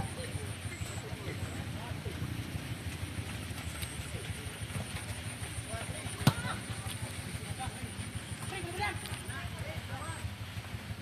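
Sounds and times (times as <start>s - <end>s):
distant shouts of players: 5.9s - 7.6s.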